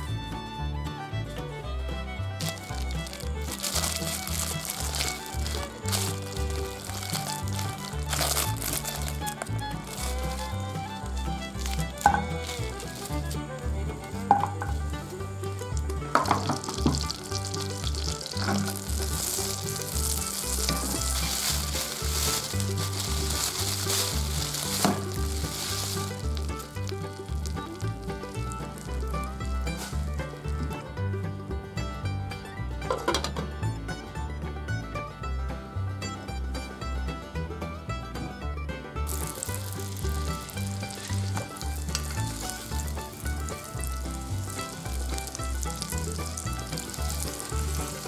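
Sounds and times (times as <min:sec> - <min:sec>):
background music: 0:00.0 - 0:48.0
butter sizzling in a frying pan: 0:15.7 - 0:29.9, 0:39.1 - 0:48.0.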